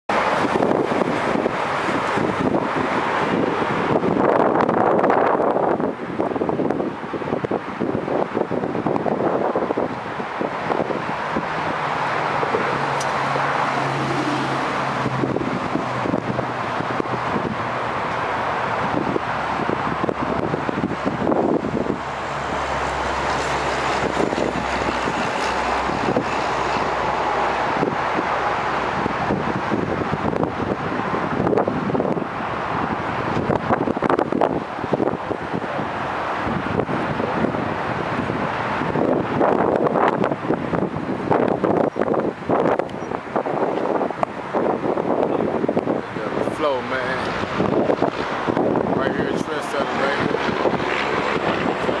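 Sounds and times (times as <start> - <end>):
car engine rumbling: 0.1 - 52.0
wind noise on microphone: 0.1 - 52.0.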